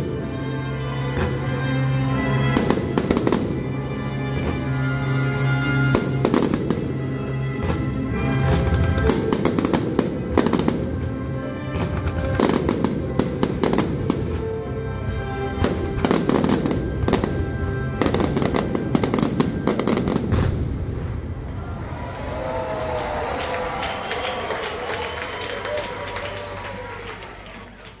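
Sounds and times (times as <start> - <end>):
music: 0.0 - 21.5, 22.8 - 28.0
fireworks bangs and crackles: 1.1 - 1.6, 2.4 - 5.0, 5.6 - 21.6.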